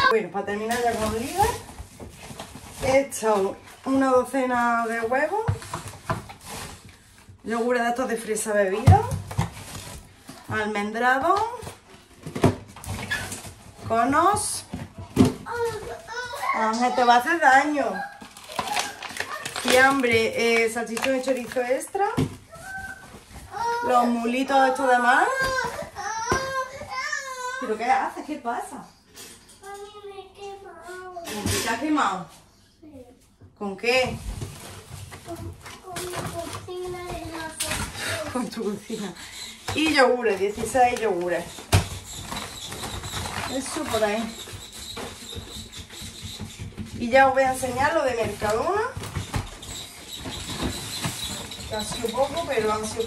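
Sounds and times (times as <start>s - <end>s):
plastic bag and packaging rustling: 0.0s - 28.6s, 33.8s - 53.0s.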